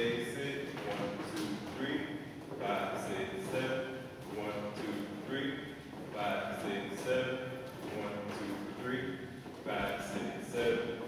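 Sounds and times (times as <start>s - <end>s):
man speaking in reverberant room: 0.0s - 11.0s.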